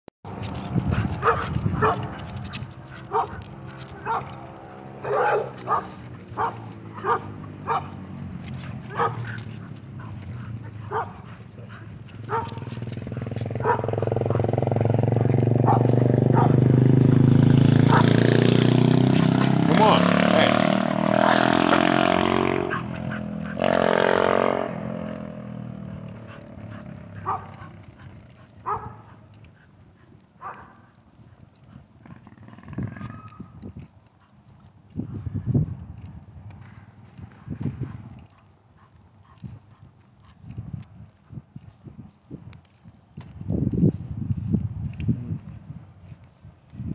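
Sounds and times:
vehicle engine passing: 0:00.3 - 0:29.3.

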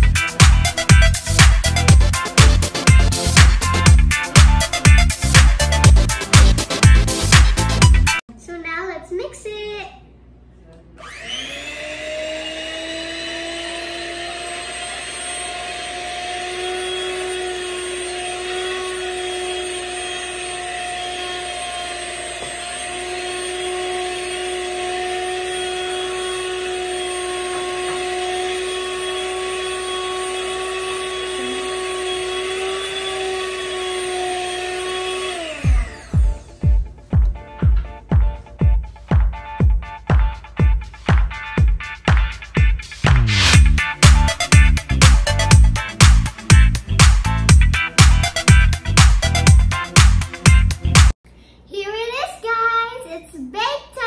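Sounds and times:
electric hand mixer whirring: 0:00.0 - 0:08.2, 0:11.0 - 0:37.0.

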